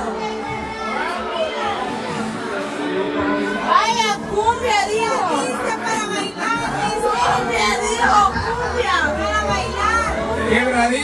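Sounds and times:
women talking loudly: 0.0s - 2.2s, 3.5s - 10.6s.

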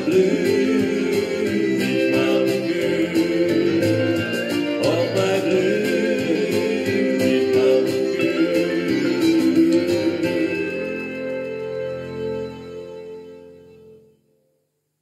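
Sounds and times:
country acoustic guitar chords: 0.0s - 14.0s.

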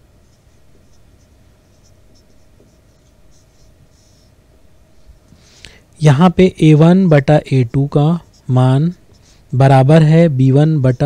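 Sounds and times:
marker pen writing on whiteboard: 0.2s - 5.2s, 6.1s - 11.0s.

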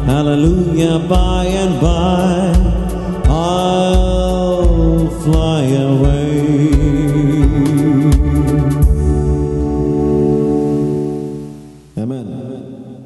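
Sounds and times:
man singing into microphone: 0.0s - 8.8s
instrumental accompaniment with beat: 0.0s - 12.0s.

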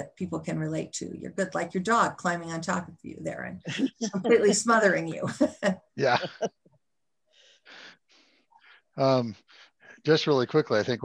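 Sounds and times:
woman laughing breathily: 6.1s - 6.6s.

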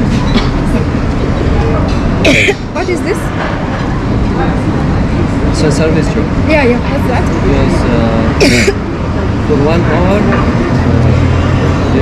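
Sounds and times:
faint voices: 0.0s - 12.0s
low rumble of passing vehicles: 0.0s - 12.0s.

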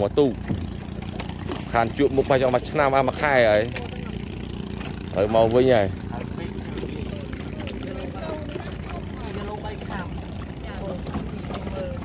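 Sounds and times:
small boat engine humming: 0.0s - 12.0s
faint voices: 2.5s - 12.0s.

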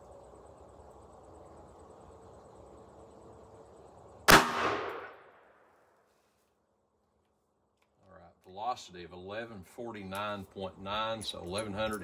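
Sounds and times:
gunshot echo: 4.3s - 5.7s.

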